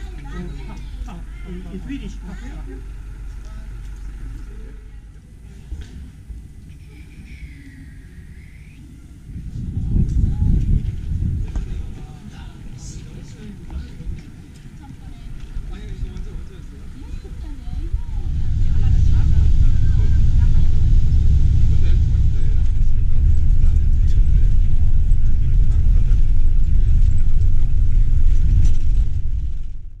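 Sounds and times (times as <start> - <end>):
people's voices: 0.0 - 29.5
bus engine and road noise: 0.0 - 30.0.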